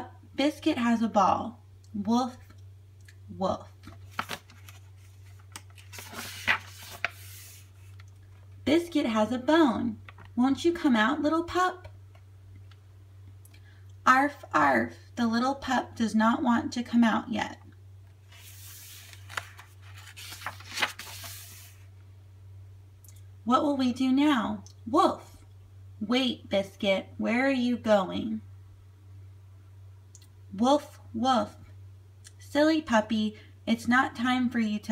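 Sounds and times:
low steady hum: 0.0s - 34.9s
page turning rustle: 3.8s - 8.4s, 10.0s - 10.4s, 18.3s - 21.9s.

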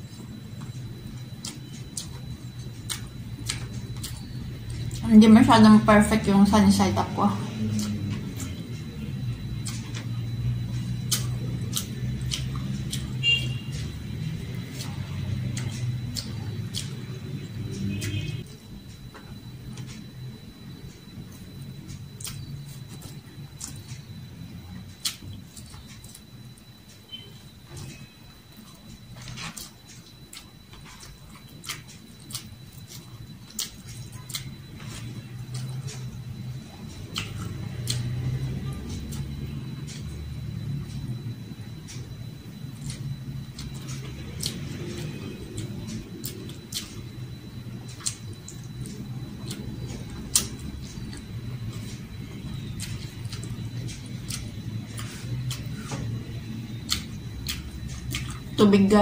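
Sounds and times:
chewing with wet mouth clicks: 0.0s - 5.1s, 7.4s - 58.6s.

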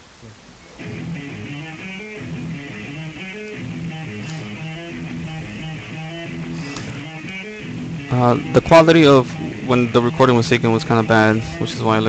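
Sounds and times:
electric guitar riff: 0.8s - 12.0s.

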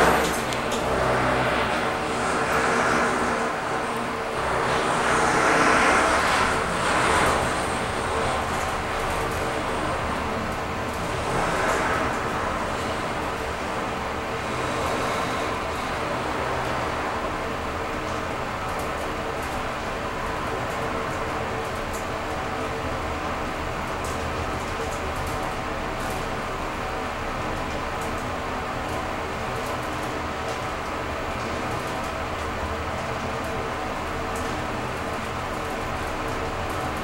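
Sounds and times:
rushing air: 0.0s - 18.4s
elevator hum: 0.0s - 37.0s.

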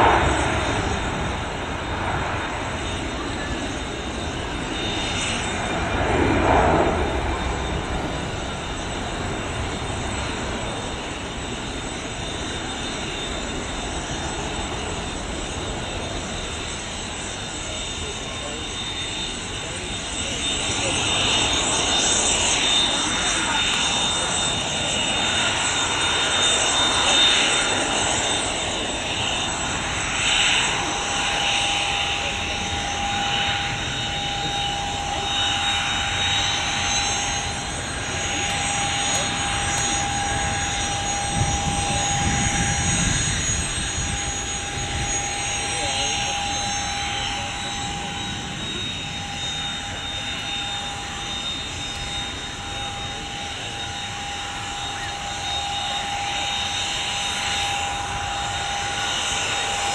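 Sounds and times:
jet engines whining: 0.0s - 59.9s.

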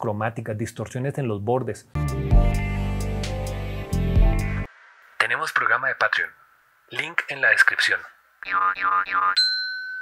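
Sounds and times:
high steady ding: 9.4s - 10.0s.

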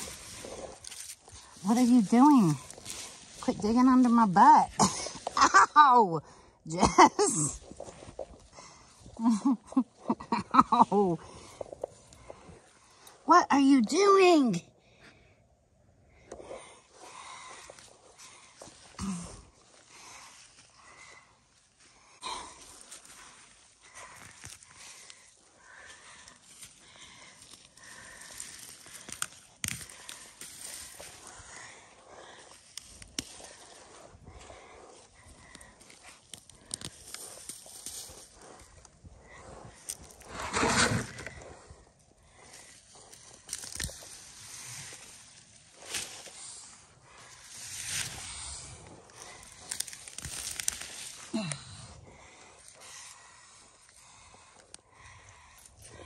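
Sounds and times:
rustling of vines: 0.0s - 5.8s, 16.4s - 56.0s
hands digging in dry soil: 0.0s - 13.2s, 16.3s - 56.0s.

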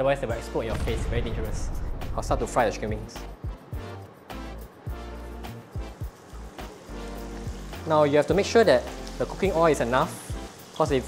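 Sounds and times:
background music with bass beat: 2.4s - 7.8s.

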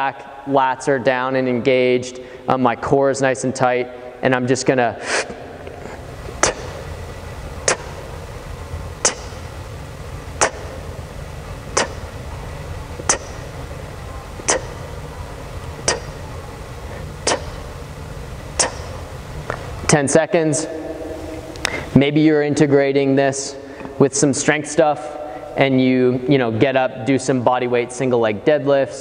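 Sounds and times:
steady low hum: 0.0s - 29.0s
sharp clock-like ticks: 13.1s - 13.5s.

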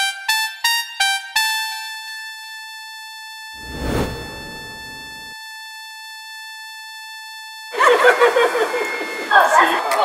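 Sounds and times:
rushing noise: 3.6s - 5.4s.

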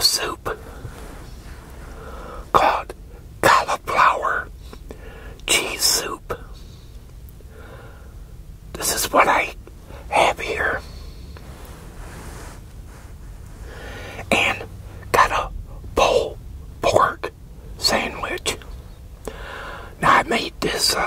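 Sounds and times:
man whispering: 0.0s - 6.7s, 8.7s - 11.2s, 13.6s - 18.7s, 19.3s - 21.0s.

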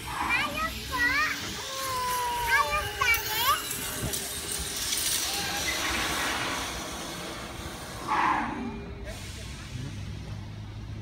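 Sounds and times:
high-pitched voices calling out: 0.0s - 4.2s.

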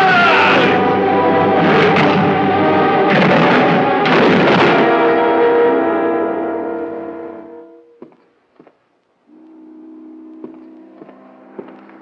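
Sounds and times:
film music cue: 0.0s - 8.0s.

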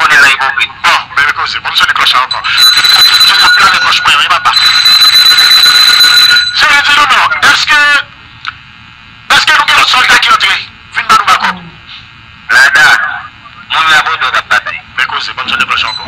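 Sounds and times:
high-pitched alarm tone: 2.2s - 7.4s, 15.6s - 16.0s.

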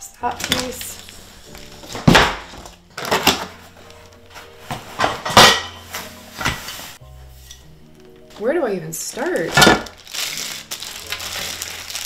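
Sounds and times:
soft background music: 0.0s - 12.0s
plastic frame parts clattering: 0.4s - 6.9s.

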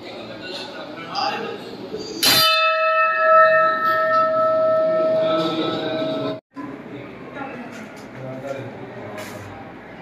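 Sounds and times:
metal bell clanging and ringing: 2.2s - 6.4s.

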